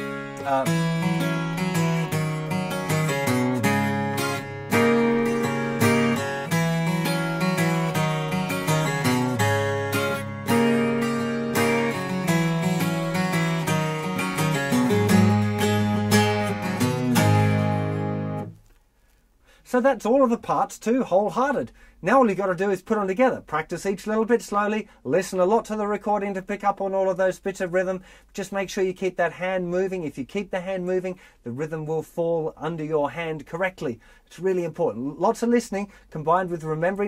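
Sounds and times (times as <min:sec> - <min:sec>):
twelve-string acoustic guitar: 0:00.0 - 0:18.8.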